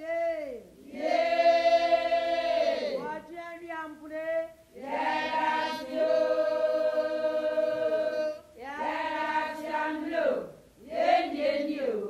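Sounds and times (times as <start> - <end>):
choir holding a sustained chord: 0.9 - 3.1, 4.8 - 12.0.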